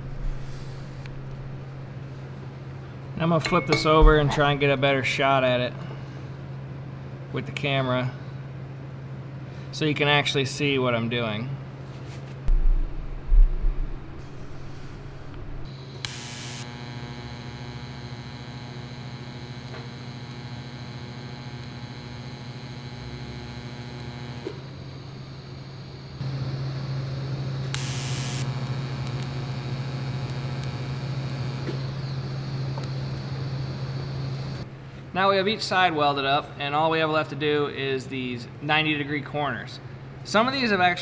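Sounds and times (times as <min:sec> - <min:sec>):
welding arc crackling: 0:00.0 - 0:02.2, 0:12.5 - 0:34.8
welder electrical hum and buzz: 0:00.0 - 0:41.0.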